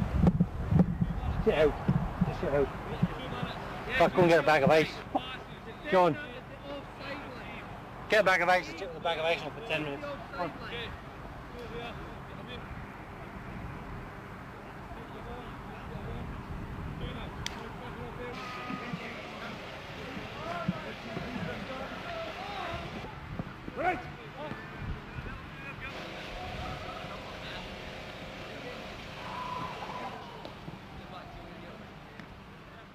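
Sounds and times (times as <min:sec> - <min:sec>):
wind rumble on microphone: 0:00.0 - 0:03.6, 0:15.8 - 0:18.2
distant shouts and chatter: 0:00.6 - 0:32.9.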